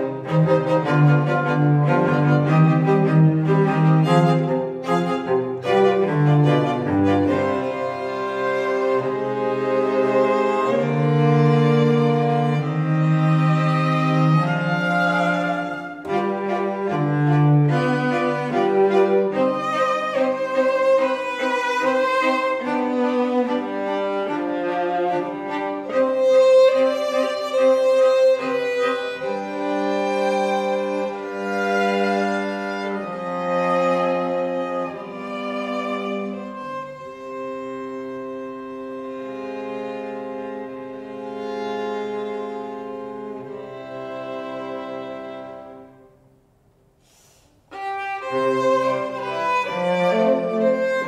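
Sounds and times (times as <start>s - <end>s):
string quartet bowed notes: 0.0s - 46.4s, 47.1s - 51.0s
soft hiss: 45.6s - 49.3s.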